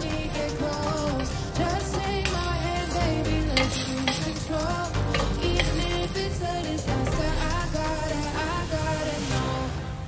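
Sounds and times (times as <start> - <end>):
food sizzling in a pot: 0.0 - 10.0
pop music playing: 0.0 - 10.0
wooden spoon stirring: 0.6 - 8.4.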